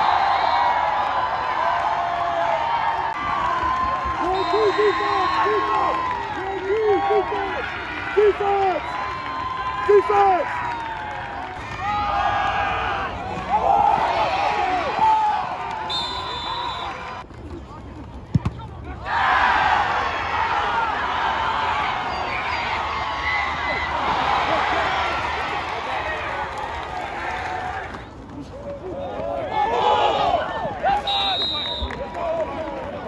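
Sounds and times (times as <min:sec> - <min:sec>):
crowd yelling and cheering: 0:00.0 - 0:17.2, 0:18.9 - 0:33.0
short whistle blast: 0:15.9 - 0:17.0, 0:31.0 - 0:31.9.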